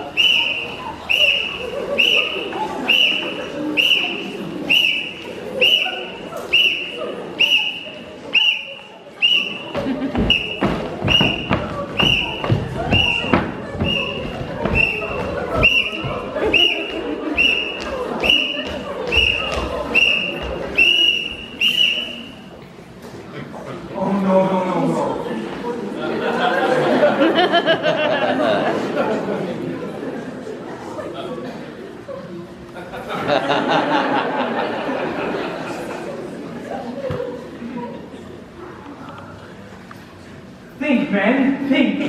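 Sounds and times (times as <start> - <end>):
whistle short blasts: 0.2 - 9.7, 10.3 - 12.4, 14.8 - 16.0, 17.4 - 22.4
marching feet thumping: 9.7 - 17.1, 17.8 - 20.8.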